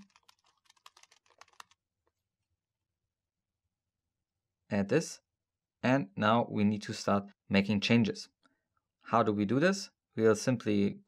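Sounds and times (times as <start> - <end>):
typing on computer keyboard: 0.0 - 1.8.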